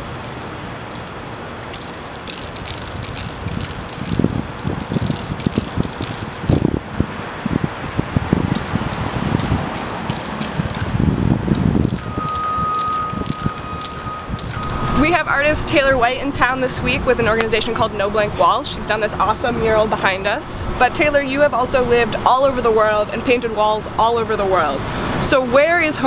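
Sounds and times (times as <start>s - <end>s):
traffic noise: 0.0s - 26.0s
spray paint can rattling: 0.1s - 7.0s, 8.5s - 15.2s
steady single tone: 11.9s - 15.8s.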